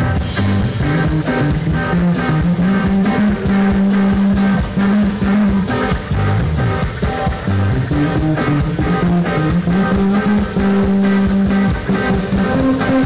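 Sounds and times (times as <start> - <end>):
band playing guitar bass and drums: 0.0 - 13.0.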